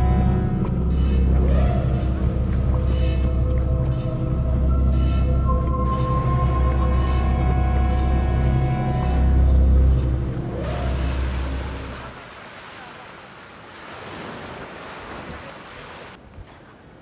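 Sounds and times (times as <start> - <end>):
music with deep bass drone: 0.0 - 12.1
small waves breaking on sand: 11.3 - 17.0.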